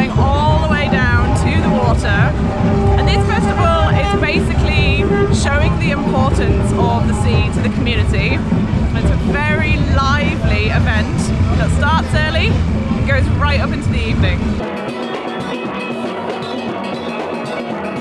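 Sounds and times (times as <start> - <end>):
group of voices singing: 0.0 - 11.8
drums beating: 0.0 - 18.0.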